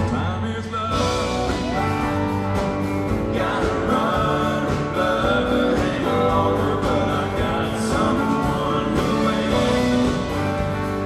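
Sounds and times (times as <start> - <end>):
man singing lead vocal: 0.0 - 10.8
drums: 0.0 - 11.0
live country band playing: 0.0 - 11.0
strummed acoustic guitar: 0.0 - 11.0.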